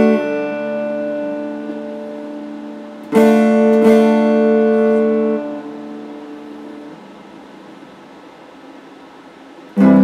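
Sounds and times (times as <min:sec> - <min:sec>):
electric guitar chord ringing: 0:00.0 - 0:08.0, 0:09.2 - 0:10.0
steady hiss: 0:00.0 - 0:10.0.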